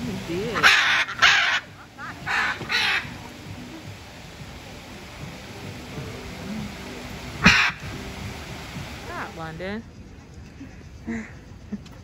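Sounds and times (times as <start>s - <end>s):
macaw squawking: 0.2s - 3.8s, 7.4s - 8.1s.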